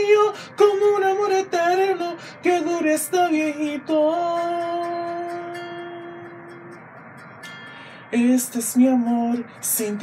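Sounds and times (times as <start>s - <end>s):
faint backing music: 0.0s - 10.0s.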